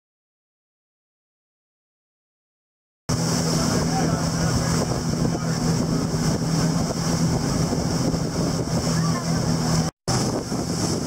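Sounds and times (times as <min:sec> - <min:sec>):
motorboat engine humming: 0:03.1 - 0:11.0
wind buffeting microphone: 0:03.1 - 0:11.0.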